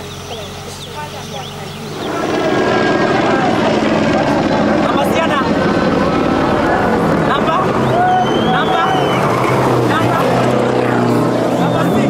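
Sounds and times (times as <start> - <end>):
car driving on gravel: 0.0 - 12.0
rally car engine: 0.0 - 12.0
many voices shouting: 5.9 - 12.0.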